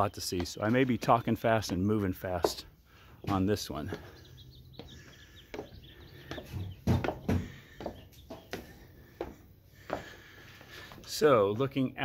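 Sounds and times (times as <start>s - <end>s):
footsteps climbing stairs: 0.0s - 11.1s
birds chirping faintly: 0.0s - 12.0s.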